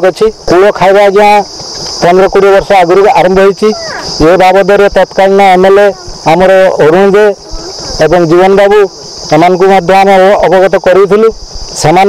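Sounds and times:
insect drone: 0.0s - 12.0s
man speaking: 0.0s - 12.0s.

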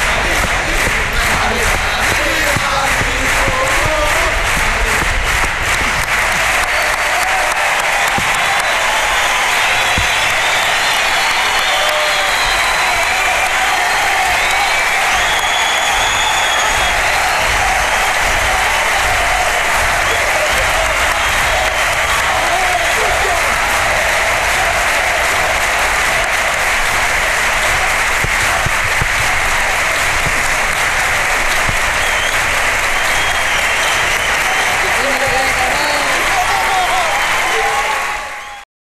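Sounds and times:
audience applauding: 0.0s - 38.6s.

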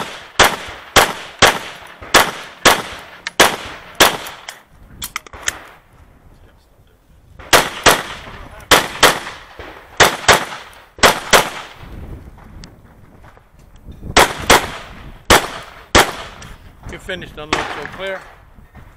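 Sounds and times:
pistol shots in double-taps: 0.0s - 4.6s, 7.4s - 11.8s, 14.1s - 16.5s.

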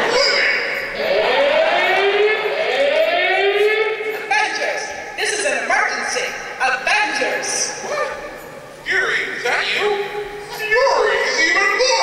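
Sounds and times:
siren-like rising tone sweeps: 0.0s - 5.1s.

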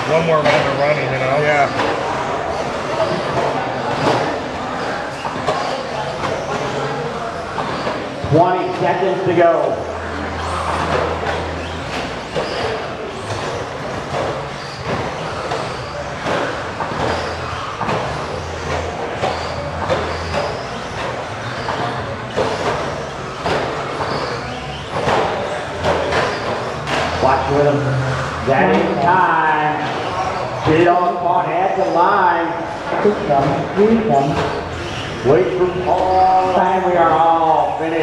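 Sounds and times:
murmur of voices: 0.0s - 38.0s
electric motors whirring: 9.0s - 30.9s.

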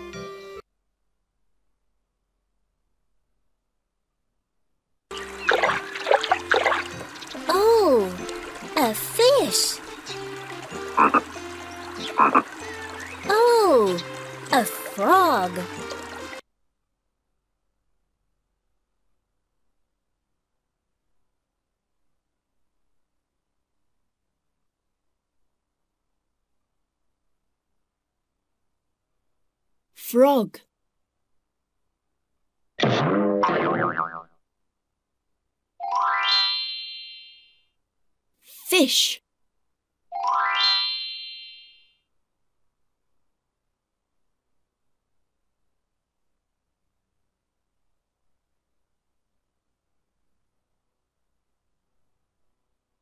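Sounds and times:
soft background music: 5.1s - 16.4s
cartoon frog croak: 10.9s - 11.4s, 12.0s - 12.6s, 32.8s - 34.4s.

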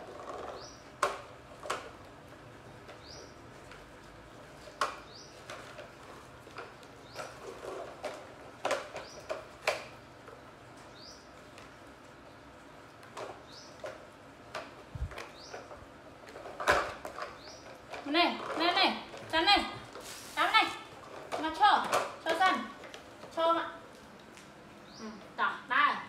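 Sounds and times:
plastic toy truck clattering on tile: 0.0s - 2.0s, 4.6s - 10.0s, 13.0s - 19.4s, 21.0s - 23.4s.

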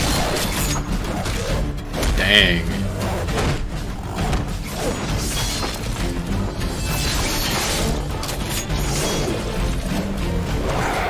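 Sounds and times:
driving trailer music: 0.0s - 11.0s.

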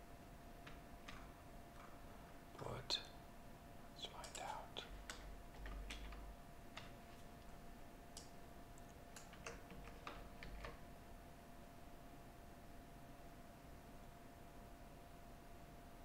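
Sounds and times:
keyboard keystrokes and clicks: 0.6s - 2.0s, 4.2s - 7.3s, 8.1s - 10.8s.

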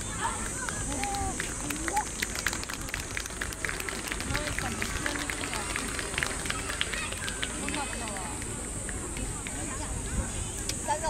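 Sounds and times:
scattered hand clapping: 0.0s - 9.9s
people's voices: 0.0s - 11.0s.

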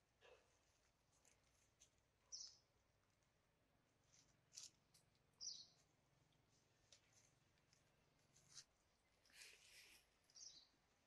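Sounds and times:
bird chirping: 2.2s - 2.8s, 5.3s - 5.9s, 10.2s - 11.0s.

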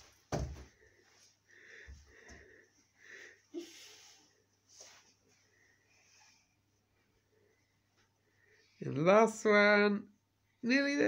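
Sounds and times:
feet landing on wooden floor: 0.0s - 0.8s
soft footsteps: 0.0s - 2.9s, 4.6s - 5.7s.

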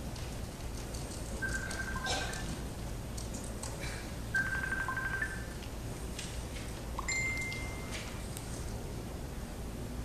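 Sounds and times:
low room hum: 0.0s - 10.0s
electronic beeps: 1.4s - 2.4s, 4.3s - 5.6s.

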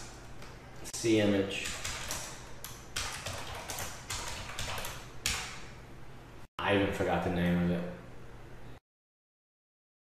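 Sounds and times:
keyboard typing: 1.6s - 5.6s.

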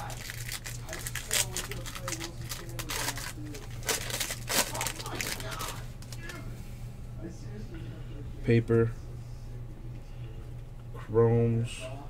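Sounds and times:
plastic wrappers crinkling: 0.0s - 6.4s
steady low hum: 0.0s - 12.0s.

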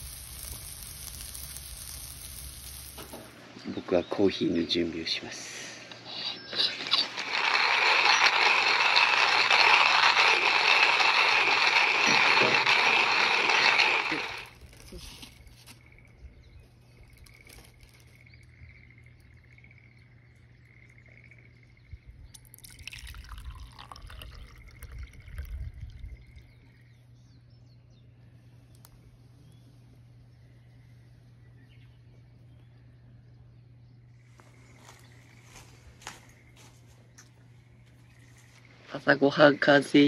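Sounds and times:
hand coffee grinder grinding: 0.0s - 3.3s, 6.5s - 15.9s, 17.0s - 18.2s, 22.4s - 25.6s.

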